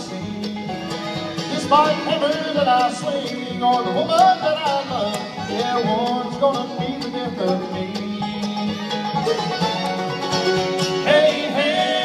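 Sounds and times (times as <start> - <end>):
bluegrass band playing: 0.0 - 12.0.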